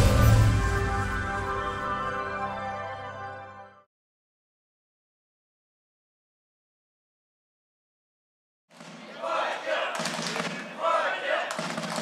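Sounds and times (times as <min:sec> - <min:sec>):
men shouting: 0:09.0 - 0:12.0.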